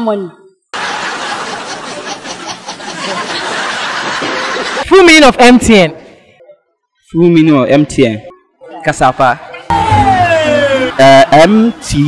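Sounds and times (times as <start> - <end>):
crowd laughing: 0.7 - 4.9, 9.7 - 12.0.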